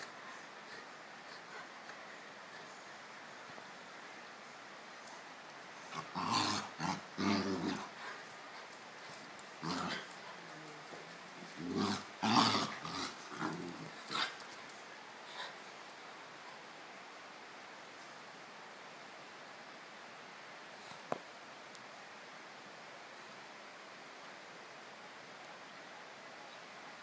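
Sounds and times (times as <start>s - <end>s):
dogs growling: 5.9s - 14.7s.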